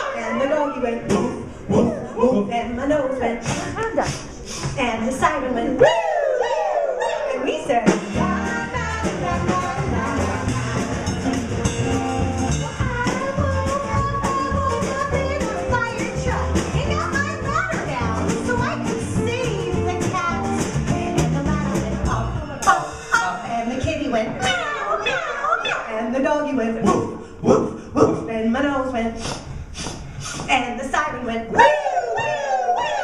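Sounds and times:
children shouting and chattering: 0:00.0 - 0:01.1, 0:09.0 - 0:26.1, 0:31.5 - 0:33.0
live band playing upbeat song: 0:07.7 - 0:23.5.

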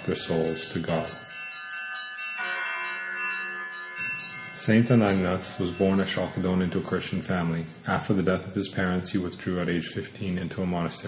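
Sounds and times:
bell-like chime ringing: 0:00.0 - 0:09.4.

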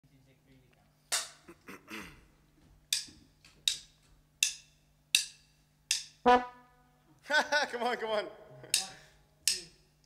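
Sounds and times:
drumstick clicks: 0:02.9 - 0:06.2, 0:08.7 - 0:09.8.

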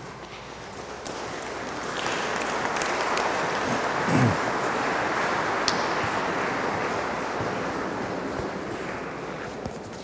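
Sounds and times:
congregation applauding: 0:00.8 - 0:09.6.

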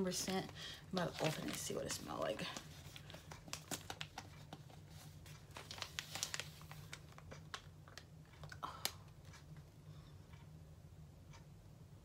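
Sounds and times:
plastic packet crinkling: 0:00.1 - 0:08.6.

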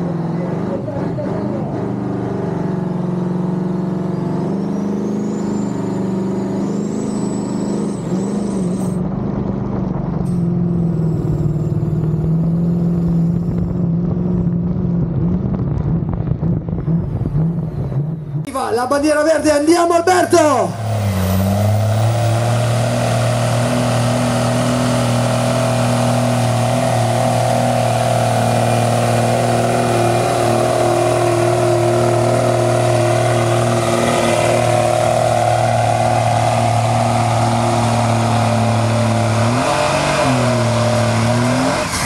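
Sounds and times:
truck engine at high revs: 0:00.0 - 0:42.0.

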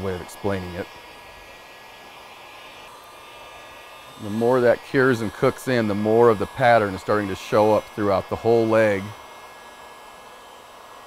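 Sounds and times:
heat gun blowing hiss: 0:00.0 - 0:11.0.

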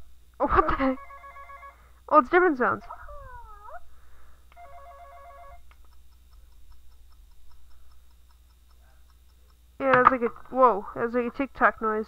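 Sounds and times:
toy phone electronic ring tone: 0:01.0 - 0:01.8, 0:04.6 - 0:05.6
faint tick-tock clock sound: 0:05.6 - 0:09.9.

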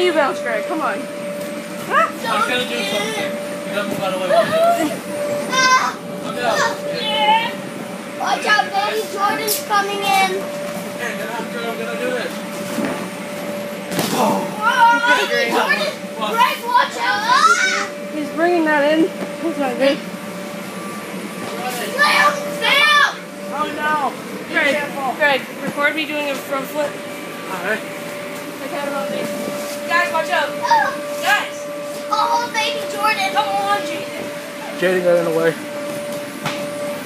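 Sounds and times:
electric air blower running: 0:00.0 - 0:37.0
children calling and squealing: 0:04.4 - 0:07.6, 0:14.5 - 0:18.0, 0:21.8 - 0:23.3, 0:32.0 - 0:34.7
children's voices: 0:32.1 - 0:34.0.

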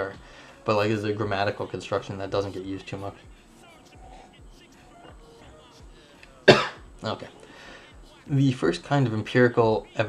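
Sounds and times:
man coughing: 0:06.4 - 0:06.9.

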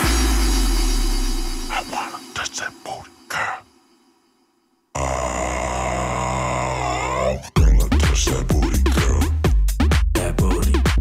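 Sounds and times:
synth drone: 0:00.0 - 0:04.4.

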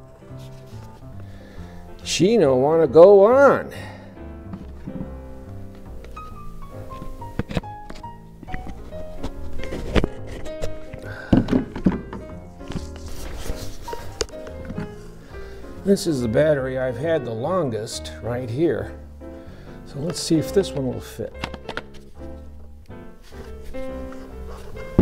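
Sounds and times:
background music: 0:00.0 - 0:25.0
battery pack knocking against tool: 0:09.9 - 0:12.8, 0:21.4 - 0:22.0.

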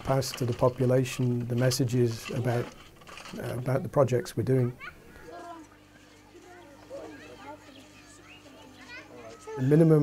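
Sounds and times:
faint chatter of people: 0:00.0 - 0:10.0
children's voices: 0:04.7 - 0:10.0.

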